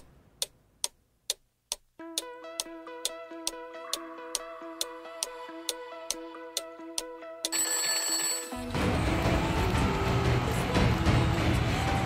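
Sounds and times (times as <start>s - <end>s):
countdown ticks: 0.0s - 8.8s
electronic music with a beat: 1.8s - 7.5s
bell-like ring: 7.5s - 8.7s.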